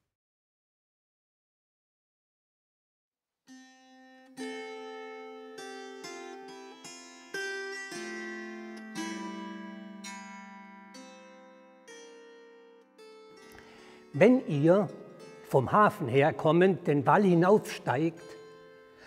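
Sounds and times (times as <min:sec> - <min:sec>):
table harp plucked melody: 0:04.4 - 0:16.1.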